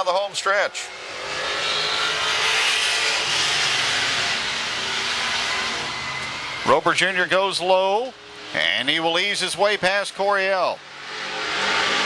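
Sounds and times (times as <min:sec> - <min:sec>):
race car engines racing past: 0:00.6 - 0:06.8, 0:09.5 - 0:12.0.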